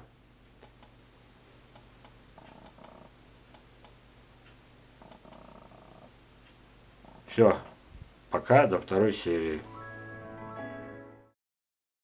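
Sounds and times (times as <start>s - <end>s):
light ticks: 1.7s - 5.5s.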